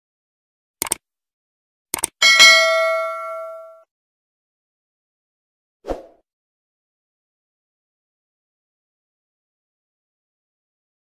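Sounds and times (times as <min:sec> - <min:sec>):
mouse clicks: 0:02.0 - 0:02.2
notification bell ding: 0:02.2 - 0:03.8.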